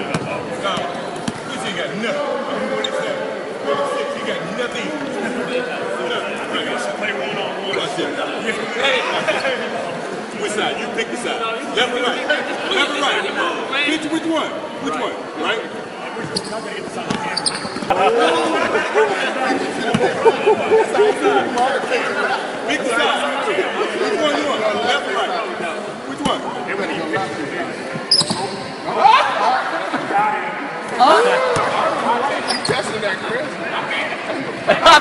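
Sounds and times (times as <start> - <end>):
voices chattering: 0.0 - 35.0.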